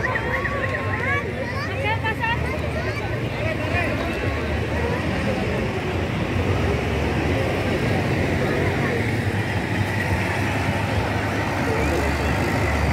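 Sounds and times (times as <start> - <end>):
crowd chatter: 0.0 - 12.9
military vehicle engines droning: 0.0 - 12.9.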